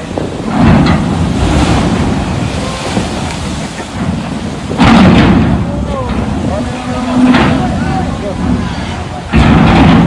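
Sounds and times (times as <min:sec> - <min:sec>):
blowing rain: 0:00.0 - 0:10.0
storm wind buffeting microphone: 0:00.0 - 0:10.0
surf: 0:00.0 - 0:10.0.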